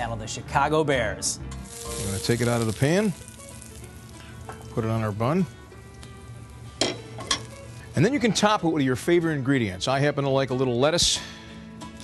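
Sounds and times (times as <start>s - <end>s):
background music: 0.0s - 12.0s
frying pan sizzling: 1.6s - 9.2s.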